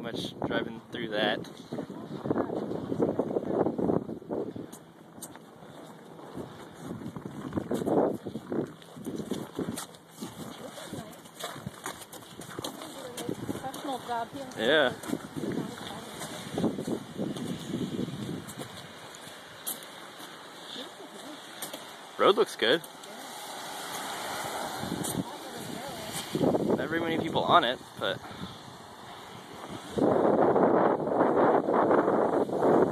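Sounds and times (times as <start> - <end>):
footsteps crunching through snow: 5.2 - 22.0
car driving past: 23.0 - 26.6.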